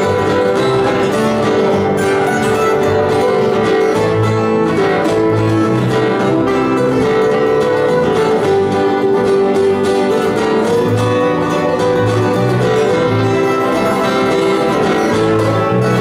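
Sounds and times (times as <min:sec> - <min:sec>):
bass guitar notes: 0:00.0 - 0:16.0
bluegrass band playing: 0:00.0 - 0:16.0.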